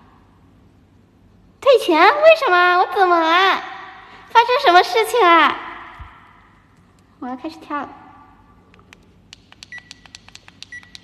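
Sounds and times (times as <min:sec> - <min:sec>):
electronic device ticking: 0:09.3 - 0:11.0.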